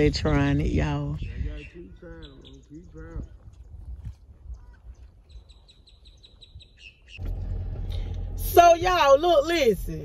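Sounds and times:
bird chirping rapidly: 0:01.2 - 0:03.8, 0:04.5 - 0:07.2.

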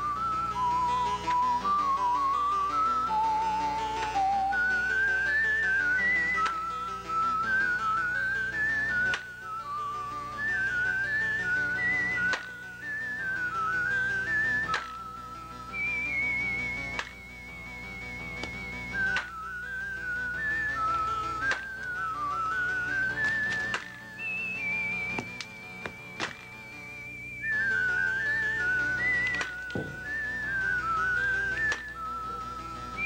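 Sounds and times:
soft background music: 0:00.0 - 0:33.0
whistled tune with vibrato: 0:00.0 - 0:33.0
sharp knocks: 0:29.8 - 0:30.0.

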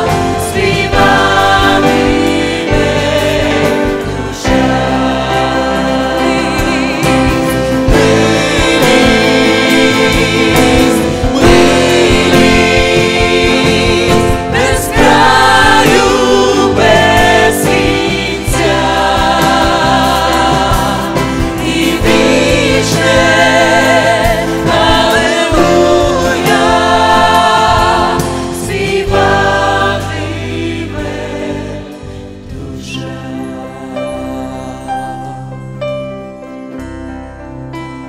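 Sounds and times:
women and man singing in harmony: 0:00.0 - 0:35.5
instrumental accompaniment: 0:00.0 - 0:38.0.

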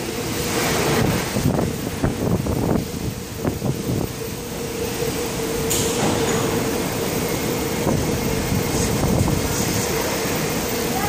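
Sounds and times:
train equipment humming: 0:00.0 - 0:11.0.

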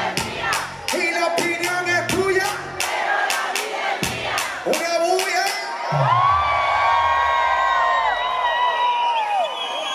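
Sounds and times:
concert music beats: 0:00.0 - 0:07.7
crowd cheering and whooping: 0:05.6 - 0:09.9.

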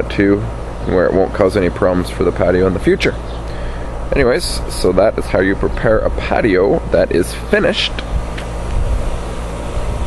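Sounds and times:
steady hiss: 0:00.0 - 0:10.0.

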